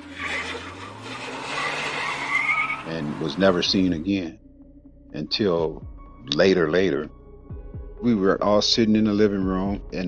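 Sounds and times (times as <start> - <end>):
tyre squeal: 0.0 - 3.9
road and tyre noise: 0.0 - 4.1
car engine rumble: 0.0 - 5.1.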